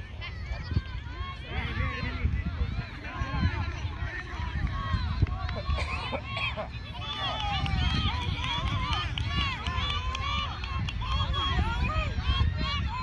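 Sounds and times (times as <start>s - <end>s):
crowd shouting and calling: 0.0s - 13.0s.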